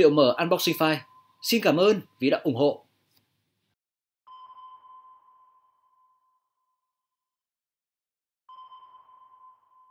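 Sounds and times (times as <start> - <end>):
ringing ping tone: 0.0 - 2.3, 4.3 - 7.0, 8.5 - 9.9.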